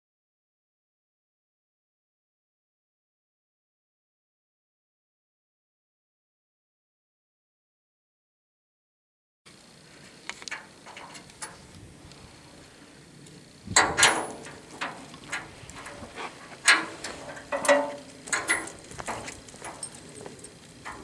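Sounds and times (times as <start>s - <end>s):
metallic clanks of ratchet straps: 10.4s - 11.7s, 13.8s - 21.0s.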